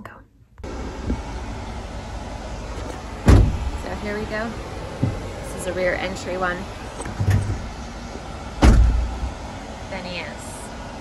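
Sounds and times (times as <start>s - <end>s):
van door slamming: 2.6s - 5.6s, 6.8s - 9.4s.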